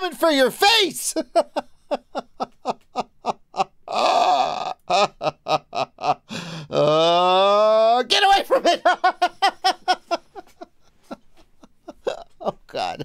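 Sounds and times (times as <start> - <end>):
hearty laughter: 1.2 - 6.3, 8.5 - 13.0
breathy gasping: 6.2 - 7.0.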